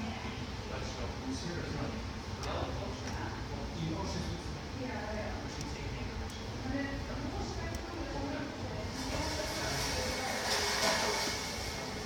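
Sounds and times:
broad hiss-like noise: 8.8s - 12.0s.

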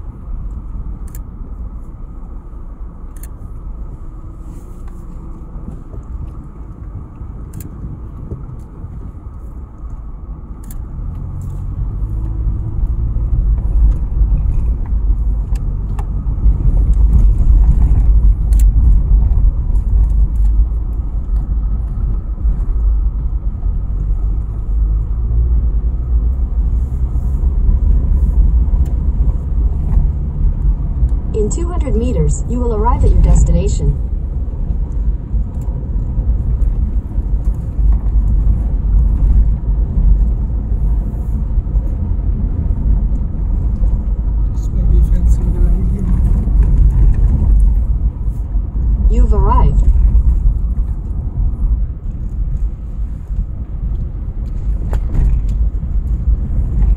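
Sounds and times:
car rumbling over unpaved ground: 0.0s - 31.6s, 34.0s - 56.9s.

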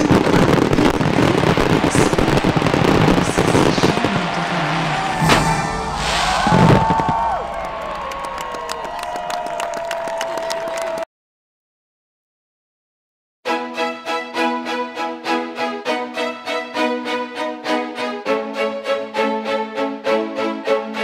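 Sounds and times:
fireworks crackling and bursting: 0.0s - 9.2s
heavy firework bangs: 0.0s - 9.2s
show music: 0.8s - 9.4s.

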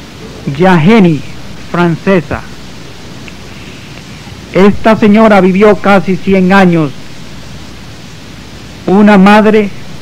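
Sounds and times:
background hiss: 0.0s - 10.0s
man narrating: 0.4s - 2.6s, 4.5s - 7.0s, 8.8s - 9.8s.

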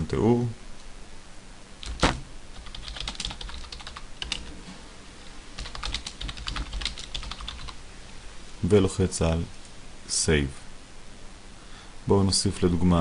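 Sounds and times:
typing on computer keyboard: 1.8s - 4.4s, 5.6s - 7.8s.

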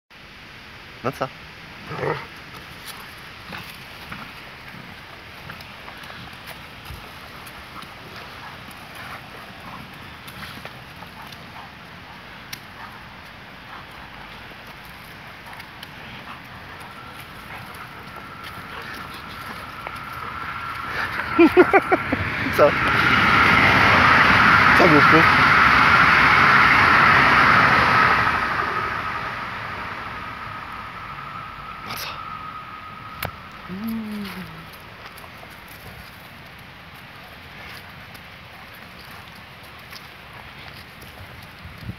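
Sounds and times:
vehicle passing by: 1.8s - 41.9s.

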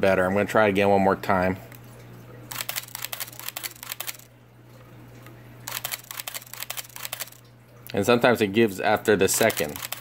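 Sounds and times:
camera shutter clicking in bursts: 2.5s - 4.3s, 5.7s - 7.4s, 9.3s - 10.0s.

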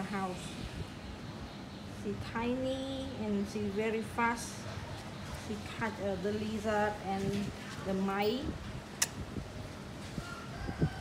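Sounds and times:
sharp click: 9.0s - 9.2s
faint rooster crow: 10.0s - 11.0s.

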